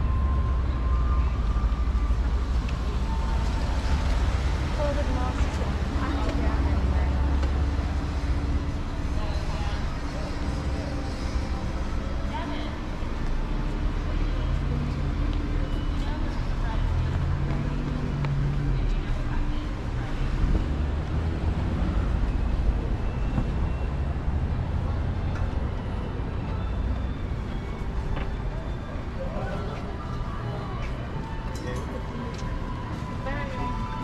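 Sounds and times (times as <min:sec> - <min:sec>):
car engines passing: 0:00.0 - 0:34.0
people talking: 0:04.7 - 0:08.0, 0:08.8 - 0:13.0, 0:13.8 - 0:20.6, 0:28.5 - 0:34.0.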